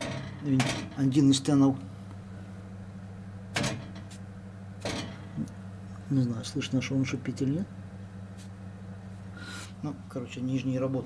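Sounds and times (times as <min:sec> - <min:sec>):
oven fan motor humming: 0:00.0 - 0:11.0.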